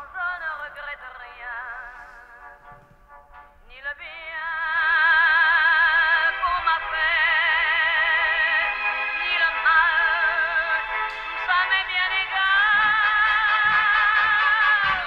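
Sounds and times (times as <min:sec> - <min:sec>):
operatic singing on a radio: 0:00.0 - 0:02.6, 0:03.7 - 0:15.0
low thuds: 0:10.5 - 0:15.0.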